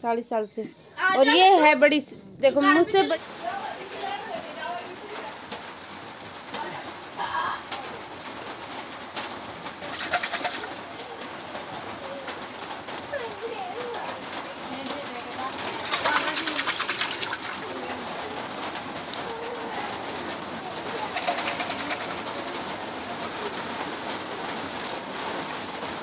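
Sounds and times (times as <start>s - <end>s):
wet bursts: 9.7s - 23.6s
birds cooing: 18.0s - 23.8s.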